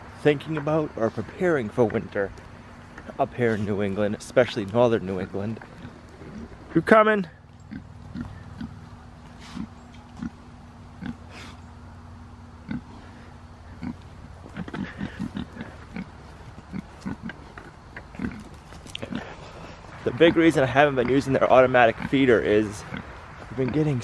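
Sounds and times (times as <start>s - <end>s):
pig grunting: 5.0s - 6.6s, 7.2s - 11.6s, 12.6s - 24.0s.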